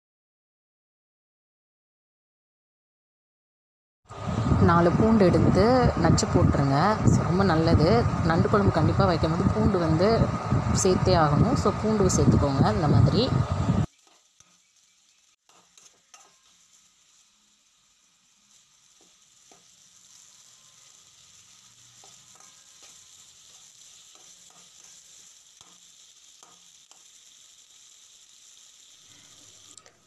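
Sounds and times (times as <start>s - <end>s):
vegetables sizzling in oil: 4.1s - 30.0s
metal spatula scraping pan: 13.9s - 16.9s, 18.8s - 27.2s.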